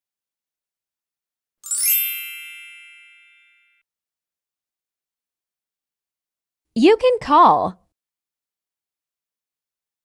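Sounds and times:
bell-like chime: 1.6s - 3.9s.

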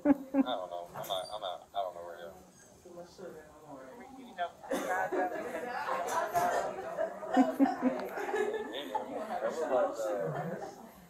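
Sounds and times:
man talking: 0.4s - 2.6s.

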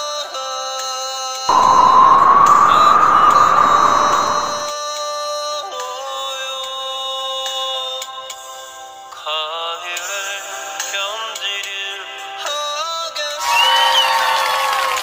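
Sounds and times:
crowd noise: 1.5s - 4.7s.

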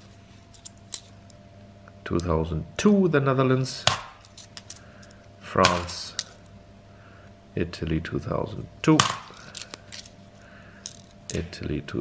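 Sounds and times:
coins clicking together: 10.8s - 11.4s.

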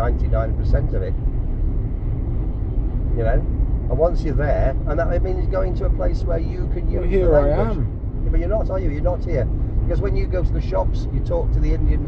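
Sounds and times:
car cabin road rumble: 0.0s - 12.0s.

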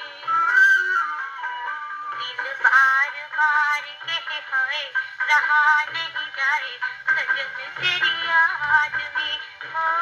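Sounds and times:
instrumental accompaniment: 0.0s - 10.0s
woman singing on gramophone record: 0.0s - 10.0s.

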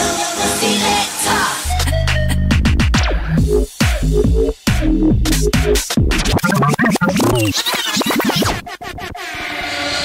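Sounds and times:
bassline house music: 0.0s - 9.7s
scratch-like sliding pitch effect: 6.1s - 10.0s.

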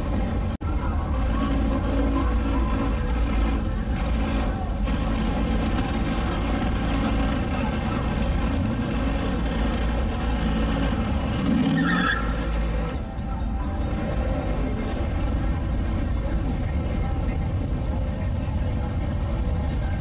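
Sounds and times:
car engine rumbling: 0.0s - 20.0s.

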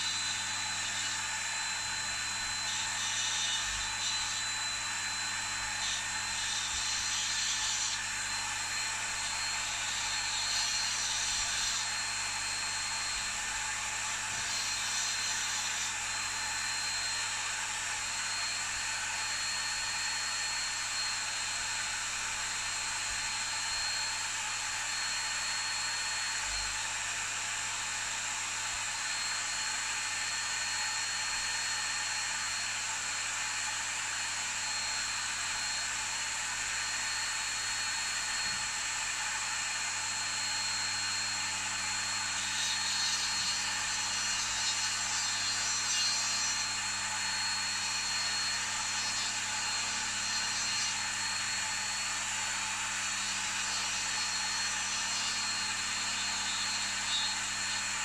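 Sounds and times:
rotary tool high whine: 0.0s - 58.0s
pen nib grinding on wheel: 2.7s - 4.5s, 42.2s - 46.7s.

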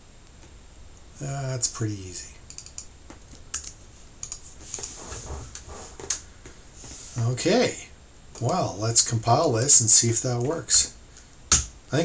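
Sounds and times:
computer keyboard typing: 2.4s - 5.0s.

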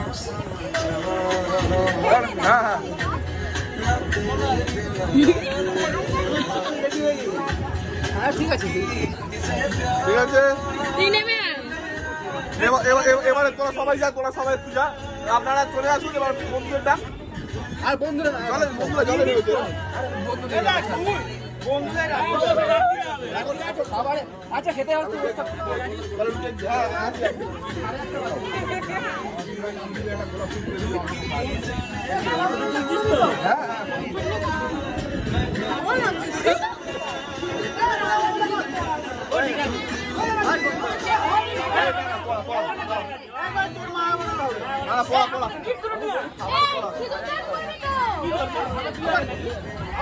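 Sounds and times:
people chattering: 0.0s - 50.0s.

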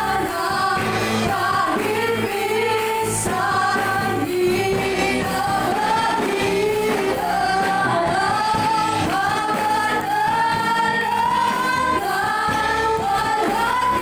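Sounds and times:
live band playing: 0.0s - 14.0s
women singing through pa: 0.0s - 14.0s.

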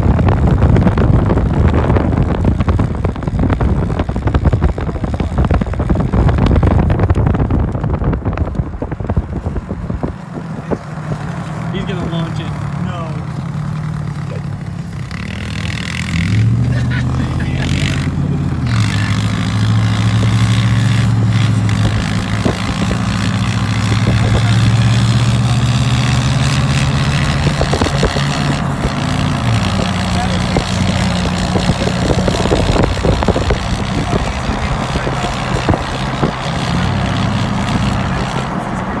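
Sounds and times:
road and wind noise: 0.0s - 39.0s
vehicle engine drone: 0.0s - 39.0s.

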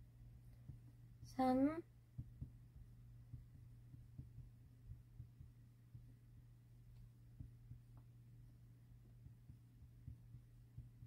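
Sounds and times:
steady low hum: 0.0s - 11.0s
marker tapping on whiteboard: 2.0s - 11.0s.

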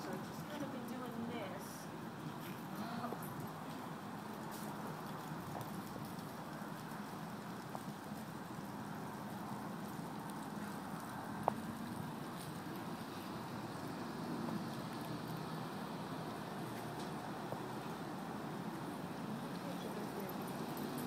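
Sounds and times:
low background noise: 0.0s - 21.0s.

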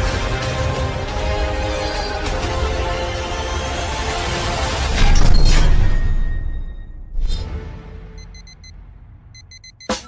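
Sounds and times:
digital alarm clock beeping: 8.2s - 8.8s, 9.4s - 10.0s.

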